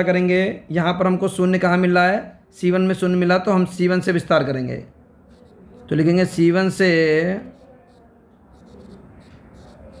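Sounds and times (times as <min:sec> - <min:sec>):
stylus scratching on tablet screen: 0:05.2 - 0:10.0.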